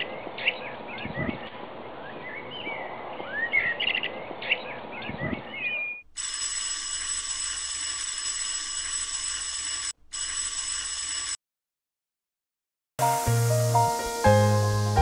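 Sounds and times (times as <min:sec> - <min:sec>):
birds chirping: 0:00.0 - 0:06.1
electric school bell ringing: 0:06.2 - 0:11.4.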